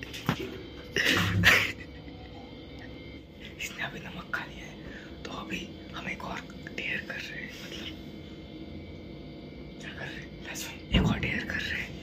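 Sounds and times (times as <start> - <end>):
faint steady hum: 0.0 - 12.0
person whispering: 3.4 - 8.0, 9.8 - 12.0.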